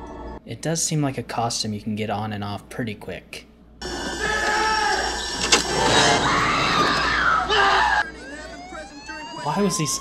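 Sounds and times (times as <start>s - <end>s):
rising siren-like wail: 3.9s - 10.0s
people shouting: 4.1s - 5.2s, 6.0s - 8.4s.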